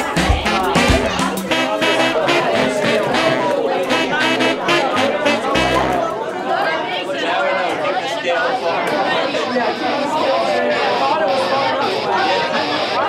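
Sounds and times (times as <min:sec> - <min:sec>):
background music: 0:00.0 - 0:06.1
many people talking: 0:00.0 - 0:13.0.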